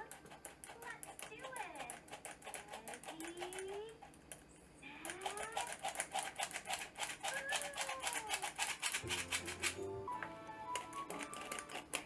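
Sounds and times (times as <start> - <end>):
flour sifter clicking: 5.1 - 9.8, 10.7 - 12.0.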